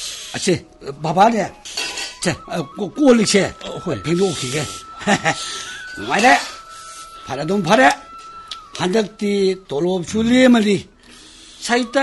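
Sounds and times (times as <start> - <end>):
people talking: 0.4 - 1.6, 2.2 - 10.9, 11.6 - 12.0
faint steady ringing tone: 0.6 - 12.0.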